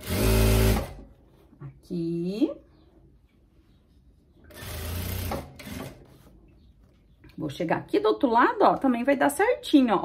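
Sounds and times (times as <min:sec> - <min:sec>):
sewing machine stitching: 0:00.0 - 0:01.0, 0:04.5 - 0:06.0.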